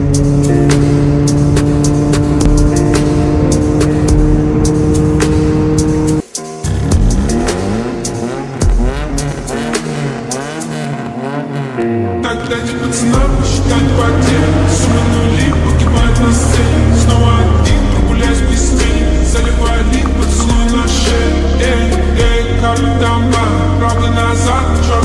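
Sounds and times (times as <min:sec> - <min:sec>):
car engine revving: 0:00.0 - 0:25.0
music with a steady beat: 0:00.0 - 0:25.0.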